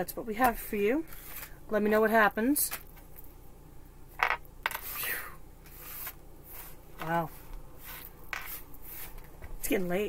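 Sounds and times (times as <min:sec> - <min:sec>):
cards sliding together: 0:05.6 - 0:06.8.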